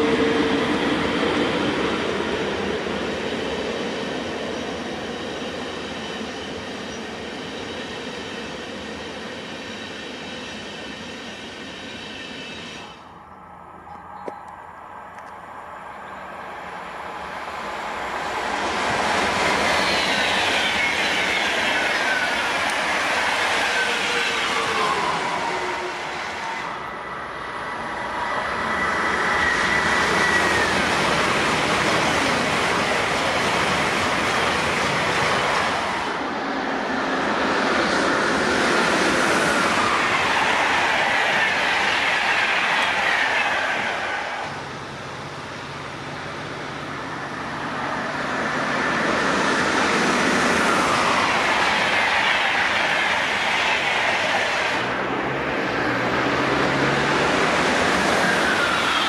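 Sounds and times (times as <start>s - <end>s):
electric train whine: 0.0s - 59.0s
high-speed train passing: 0.0s - 59.0s
wheel-on-rail noise: 36.9s - 59.0s.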